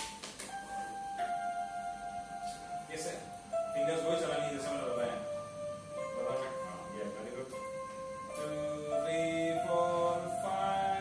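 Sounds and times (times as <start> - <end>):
electronic keyboard rising notes: 0.0 - 11.0.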